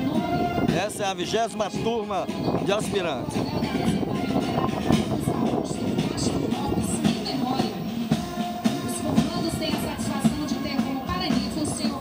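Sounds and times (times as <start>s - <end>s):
drum beats: 0.0s - 12.0s
military band playing a march: 0.0s - 12.0s.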